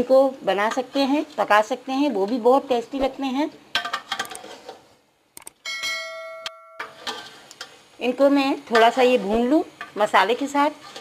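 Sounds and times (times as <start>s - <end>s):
spoon stirring in a metal pot: 2.1s - 4.9s, 6.8s - 7.8s, 8.6s - 11.0s
bright bell chime: 5.6s - 7.0s.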